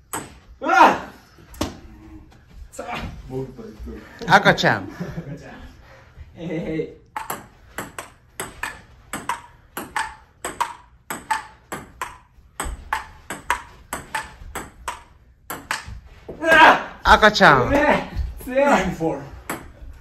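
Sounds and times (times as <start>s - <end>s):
person speaking: 1.9s - 5.1s, 16.4s - 19.4s
ping-pong ball clicking off paddles: 7.1s - 16.0s.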